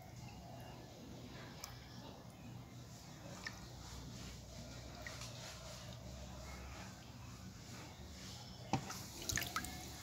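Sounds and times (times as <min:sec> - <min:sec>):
hand stirring water splashes: 0:02.9 - 0:06.1, 0:08.7 - 0:10.0.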